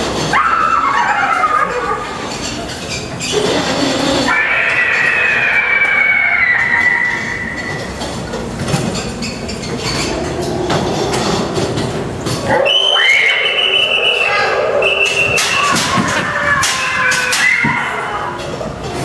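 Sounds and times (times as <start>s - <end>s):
ride car rattling on track: 7.1s - 19.0s
high squeal: 12.4s - 18.2s.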